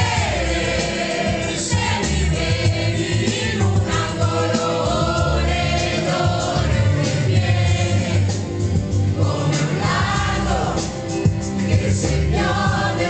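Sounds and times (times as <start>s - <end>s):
loud amplified backing track: 0.0s - 13.0s
people singing into microphones: 0.0s - 13.0s.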